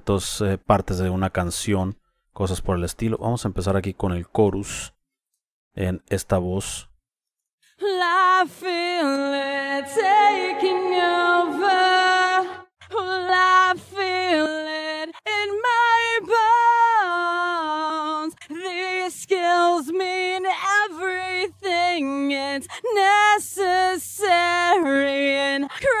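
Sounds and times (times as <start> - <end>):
solo singing voice with effects: 7.8 - 26.0.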